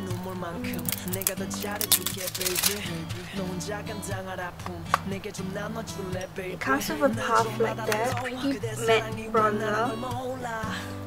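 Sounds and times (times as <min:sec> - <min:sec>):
pop music with singing: 0:00.0 - 0:11.0
plastic compact clicking: 0:00.7 - 0:02.9.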